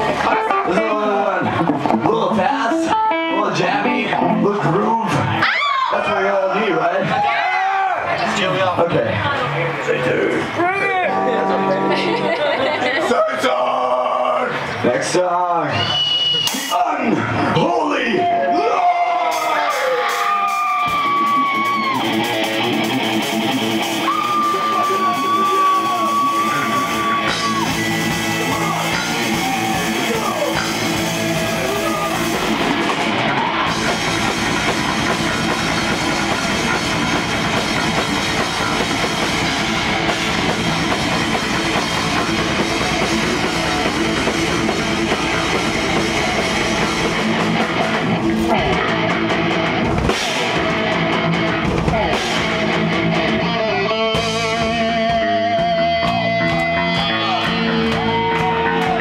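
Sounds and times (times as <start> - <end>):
thrash metal band playing live: 0.0 - 7.3, 8.1 - 15.0, 19.0 - 59.0
bass and drums: 0.0 - 11.1, 15.6 - 59.0
electric guitar held notes: 2.7 - 4.6, 11.1 - 12.5.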